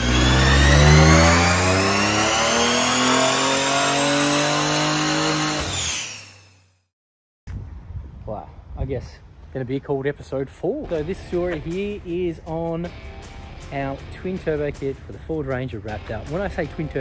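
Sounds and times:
engine at full throttle revving: 0.0s - 6.6s.

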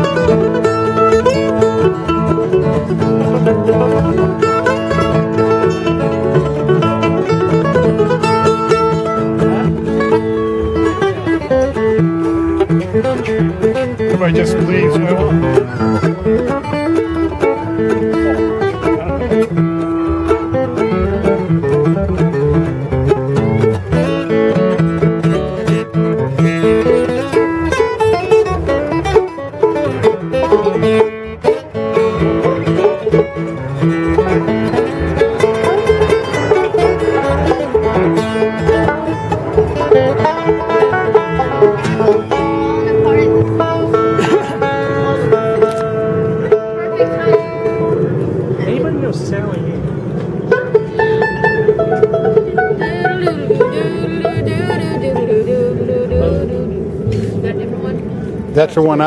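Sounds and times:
banjo: 0.0s - 48.8s, 50.2s - 58.0s
acoustic guitar: 0.0s - 59.0s
mandolin: 0.0s - 59.0s
upright bass: 0.0s - 59.0s.

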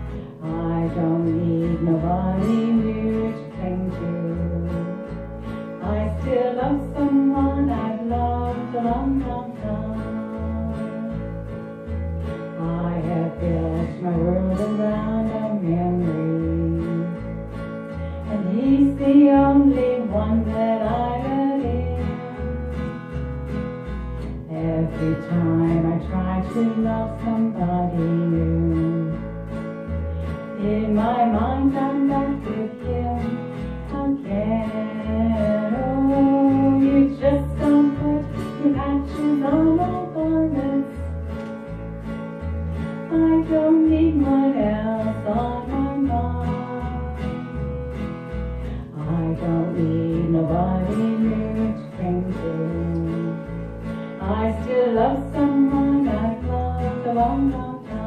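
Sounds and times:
bass guitar low notes: 0.0s - 58.0s
strummed acoustic guitar: 0.0s - 58.0s
woman singing country song: 0.0s - 58.0s.

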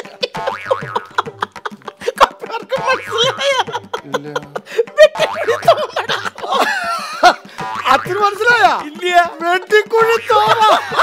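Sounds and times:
springy sliding comic notes: 0.0s - 4.0s, 5.0s - 11.0s
light percussive beat: 0.0s - 11.0s.

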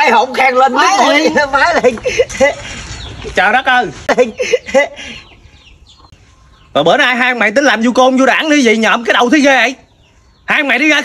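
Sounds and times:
man talking: 0.0s - 5.1s, 6.7s - 9.9s, 10.5s - 11.0s
chickens clucking: 0.2s - 7.2s
person laughing: 1.4s - 2.9s, 4.0s - 5.4s.

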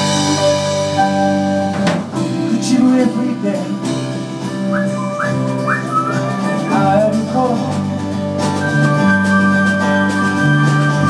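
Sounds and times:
live band with acoustic guitar: 0.0s - 11.0s
high sliding melodic line: 4.5s - 11.0s.

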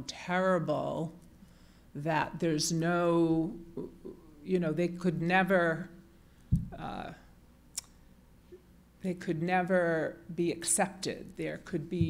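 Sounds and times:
woman's voice: 0.0s - 1.1s, 2.0s - 5.9s, 6.8s - 7.2s, 9.0s - 12.0s.

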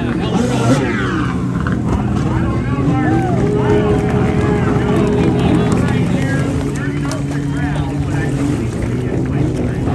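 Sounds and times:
jet ski engine droning: 0.0s - 9.9s
people talking: 0.0s - 9.9s.

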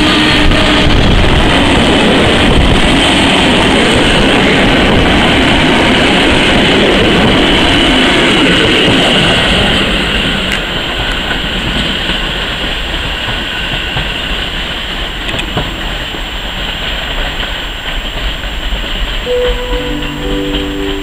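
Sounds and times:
train wheels on rails: 0.0s - 21.0s
wheels clicking over rail joints: 10.2s - 19.3s.

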